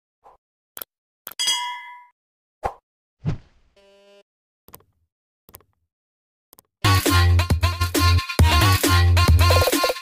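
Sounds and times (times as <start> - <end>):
bright bell-like ding: 1.4 - 2.1
dull thump: 3.2 - 3.6.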